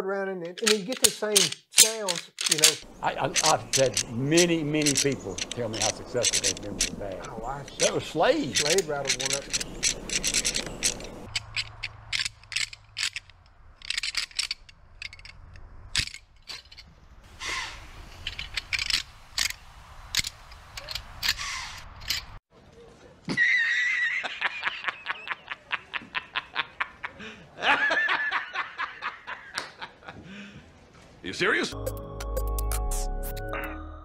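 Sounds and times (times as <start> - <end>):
rattle bag clacking: 0.5 - 16.9
rapid ticking: 2.4 - 15.4.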